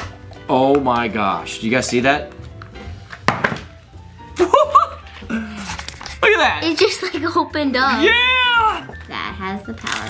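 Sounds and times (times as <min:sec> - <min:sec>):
plastic clacks: 0:09.0 - 0:10.0.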